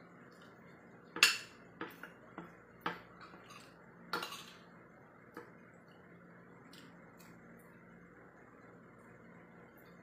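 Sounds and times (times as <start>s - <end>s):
cutlery clinking on a plate: 2.8s - 4.7s.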